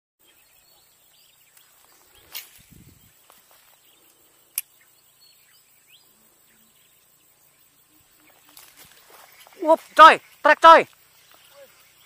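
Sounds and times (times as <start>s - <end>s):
birds chirping: 0.2s - 12.0s
insects: 0.2s - 12.0s.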